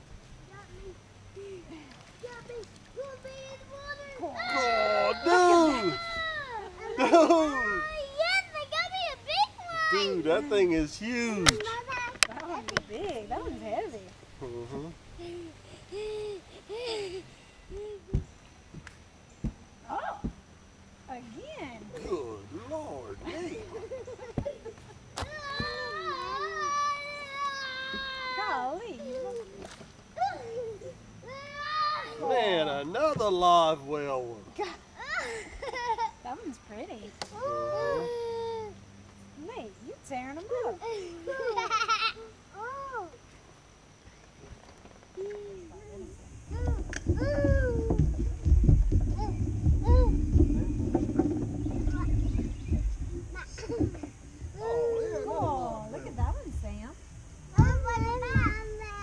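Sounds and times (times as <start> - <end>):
steady low rumble: 46.1 - 54.6.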